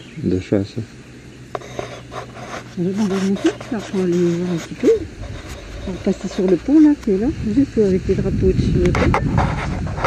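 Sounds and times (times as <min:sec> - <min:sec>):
person speaking: 0:01.6 - 0:08.3.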